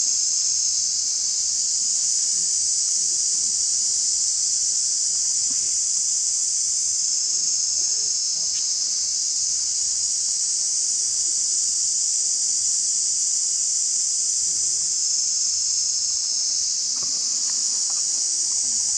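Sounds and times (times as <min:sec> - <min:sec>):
high-pitched insect chorus: 0:00.0 - 0:18.9.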